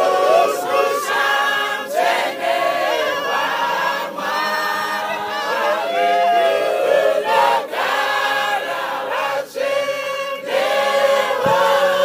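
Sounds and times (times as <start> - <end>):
mixed choir singing a cappella: 0.0 - 12.0.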